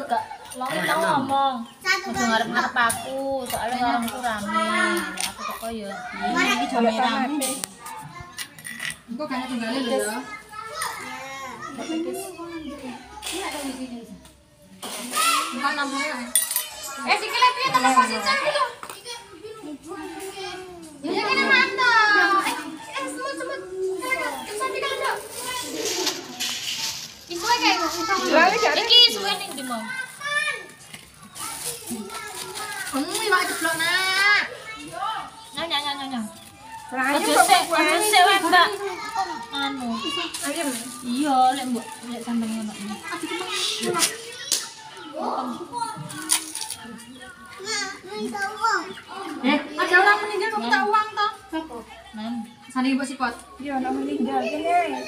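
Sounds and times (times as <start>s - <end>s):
children chattering and calling out: 0.0s - 55.0s
people talking: 14.9s - 55.0s.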